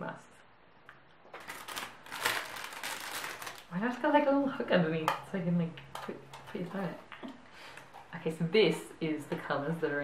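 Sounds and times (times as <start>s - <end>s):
packaging rustling and scraping: 1.3s - 3.8s.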